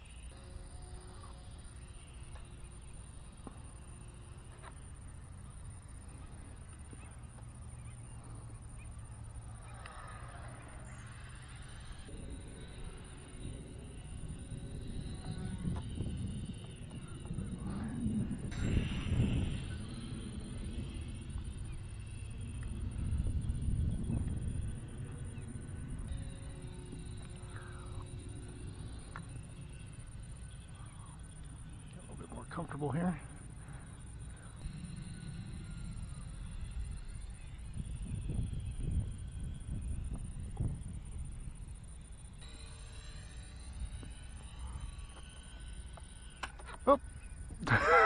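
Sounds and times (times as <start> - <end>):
wind buffeting microphone: 0.0 - 46.4
model plane motor whine: 0.0 - 48.0.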